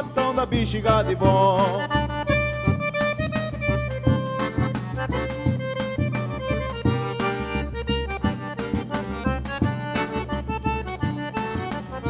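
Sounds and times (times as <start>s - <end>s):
accordion melody: 0.0s - 12.0s
triangle keeping time: 0.0s - 12.0s
bass drum beat: 0.2s - 11.7s.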